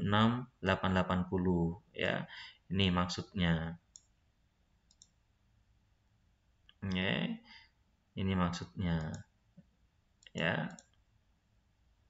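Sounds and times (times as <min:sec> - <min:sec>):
faint computer mouse clicks: 0:04.9 - 0:05.2.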